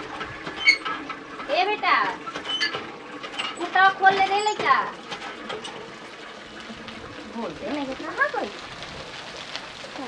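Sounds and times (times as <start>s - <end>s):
hand water pump clanking: 0.0s - 8.4s.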